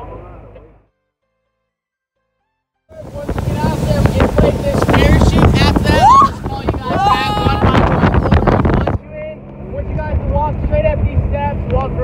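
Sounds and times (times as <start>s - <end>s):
man talking: 2.9s - 7.8s
wind buffeting microphone: 2.9s - 9.1s, 9.7s - 12.0s
water rushing past boat: 2.9s - 12.0s
voices calling out: 5.4s - 9.0s.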